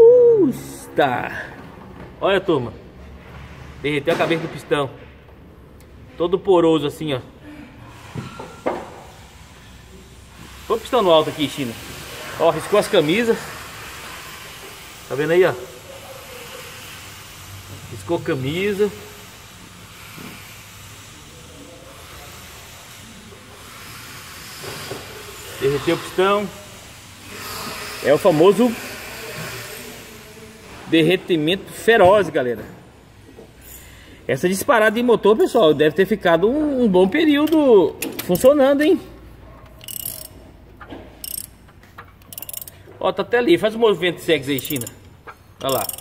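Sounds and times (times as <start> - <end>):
ratchet wrench clicking: 37.4 - 38.6, 39.8 - 40.5, 41.2 - 43.0, 44.3 - 46.0.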